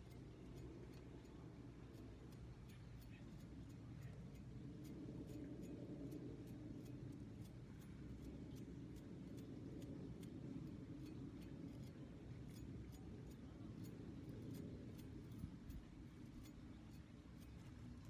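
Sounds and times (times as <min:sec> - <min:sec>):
palette knife ticking on brush bristles: 0:00.0 - 0:18.0.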